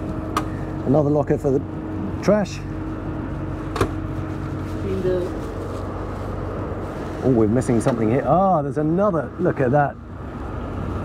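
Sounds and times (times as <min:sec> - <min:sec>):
boat diesel engines droning: 0:00.0 - 0:11.0.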